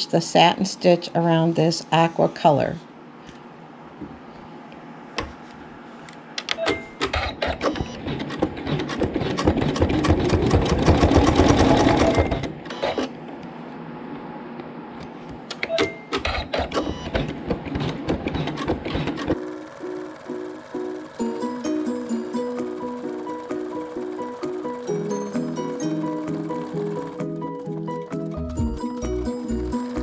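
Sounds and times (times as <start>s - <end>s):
embroidery machine stitching: 7.0s - 13.1s, 16.1s - 30.0s.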